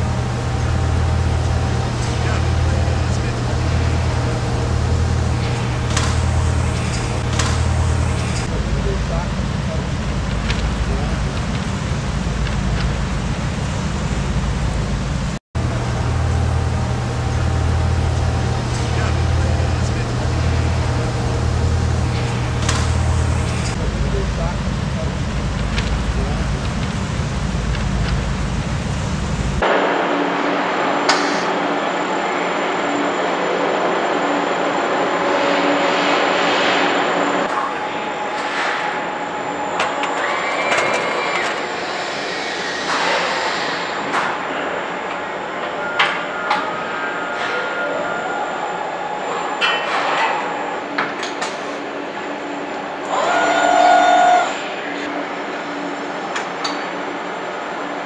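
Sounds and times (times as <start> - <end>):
indistinct voices: 0.0 - 58.0
steady machinery hum: 0.0 - 58.0.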